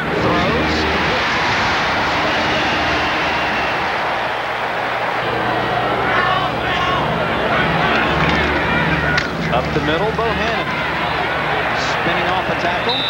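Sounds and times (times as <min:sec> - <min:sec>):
stadium crowd cheering: 0:00.0 - 0:13.0.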